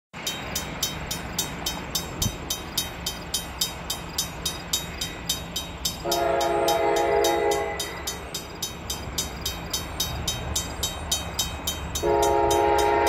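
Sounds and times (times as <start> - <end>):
low train rumble: 0.2 - 13.0
railroad crossing bell ringing: 0.2 - 13.0.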